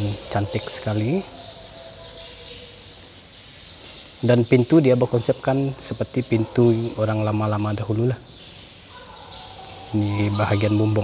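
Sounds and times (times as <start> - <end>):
man's voice: 0.0 - 1.4, 4.2 - 8.2, 9.9 - 11.0
faint high chirping: 0.0 - 11.0.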